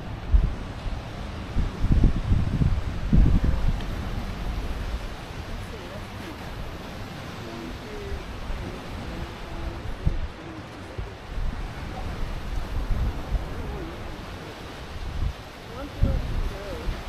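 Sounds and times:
low thumps from gusts: 0.0 - 17.0
surf washing on shore: 0.0 - 17.0
wind rumbling on microphone: 0.0 - 17.0.

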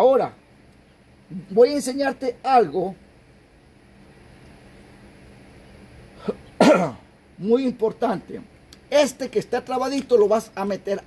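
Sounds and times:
man coughing: 6.2 - 7.1
throat clearing sound: 6.2 - 7.1.

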